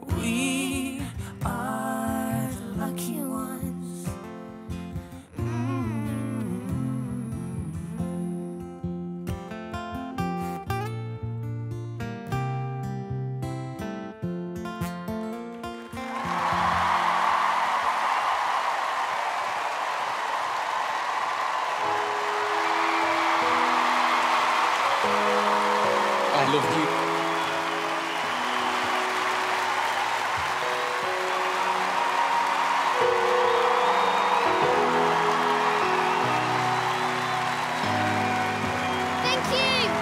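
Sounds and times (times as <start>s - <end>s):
audience applause and cheering: 15.8s - 40.0s.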